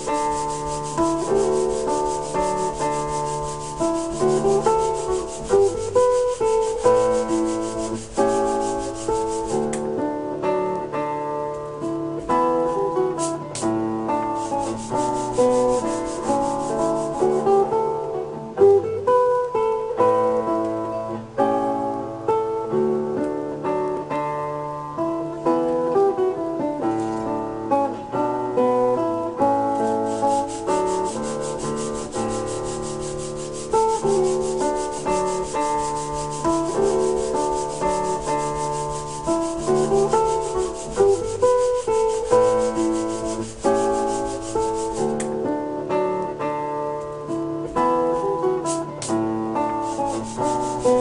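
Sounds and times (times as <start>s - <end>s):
hand-sanding wood rasping: 0.0s - 9.8s, 12.7s - 13.5s, 14.4s - 17.6s, 29.8s - 45.2s, 49.8s - 51.0s
acoustic guitar music: 0.0s - 51.0s.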